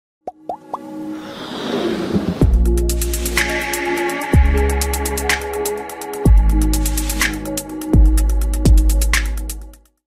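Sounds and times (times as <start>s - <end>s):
electronic intro music: 0.5s - 8.5s
whoosh: 1.0s - 3.7s.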